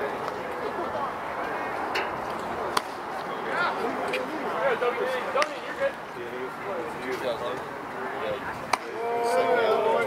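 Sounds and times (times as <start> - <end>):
voices shouting: 8.7 - 10.0.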